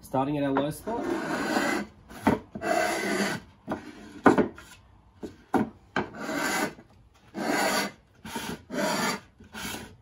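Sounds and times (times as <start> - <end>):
block plane shaving wood: 0.9 - 4.8, 5.6 - 10.0.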